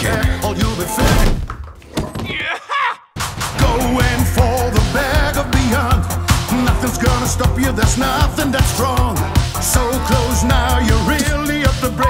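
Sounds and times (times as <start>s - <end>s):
person shouting: 2.3s - 3.0s.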